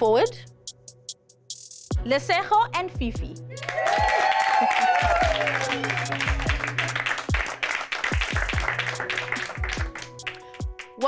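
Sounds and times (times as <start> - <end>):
people applauding: 3.6 - 11.0
music with deep bass beat: 5.0 - 10.8.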